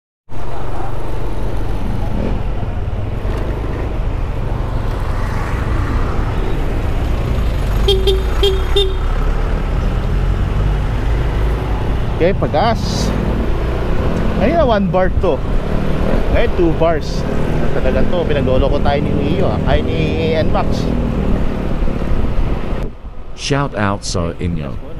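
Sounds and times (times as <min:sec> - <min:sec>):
motorcycle engine rumble: 0:00.3 - 0:20.0
road noise: 0:00.3 - 0:24.9
horn toots: 0:07.8 - 0:09.2.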